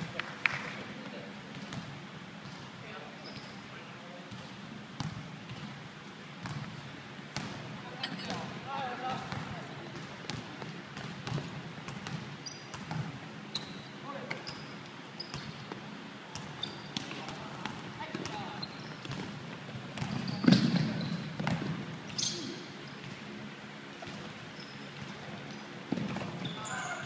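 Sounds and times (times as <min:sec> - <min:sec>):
sneaker squeaks: 0:02.4 - 0:03.7, 0:12.0 - 0:23.3, 0:24.0 - 0:27.0
basketball bouncing on wooden floor: 0:20.0 - 0:21.8.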